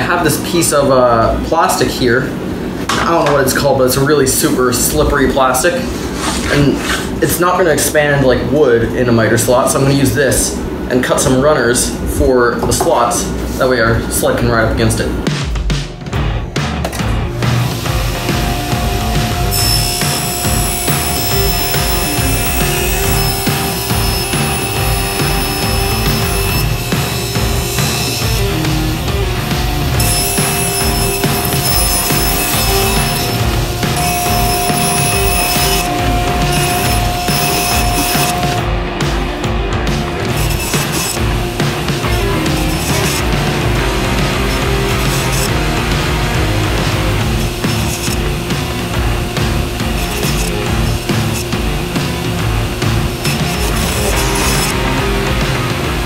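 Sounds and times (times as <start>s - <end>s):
driving music with steady beat: 15.3s - 56.0s
table saw cutting plastic: 17.4s - 38.6s, 40.2s - 56.0s.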